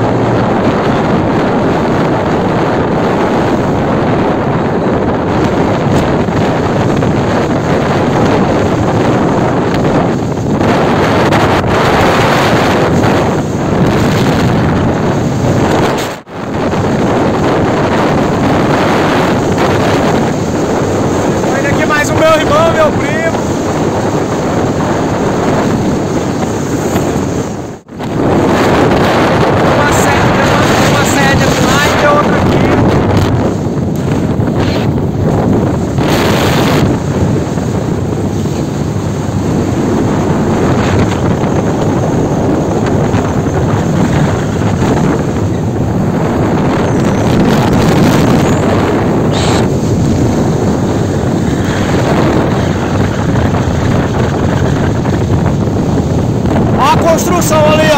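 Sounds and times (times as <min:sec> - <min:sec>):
truck engine and road noise: 0:00.0 - 0:57.9
wind rushing over microphone: 0:00.0 - 0:57.9.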